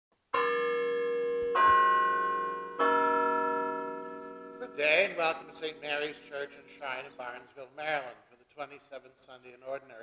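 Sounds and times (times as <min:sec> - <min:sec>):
bells chiming: 0:00.4 - 0:07.4.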